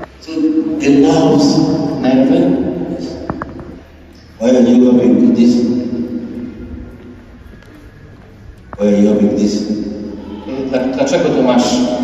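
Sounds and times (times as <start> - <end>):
man speaking over loudspeakers: 0.2 - 3.3, 4.2 - 6.8, 8.8 - 12.0.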